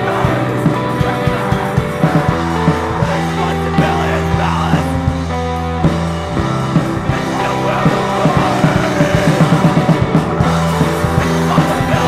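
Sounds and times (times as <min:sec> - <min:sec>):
bass guitar: 0:00.0 - 0:12.0
distorted electric guitar chords: 0:00.0 - 0:12.0.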